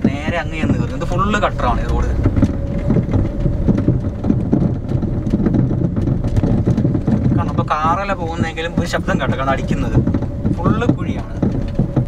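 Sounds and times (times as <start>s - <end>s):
car engine and tyres rumbling: 0.0s - 12.0s
car knocking and rattling: 0.0s - 12.0s.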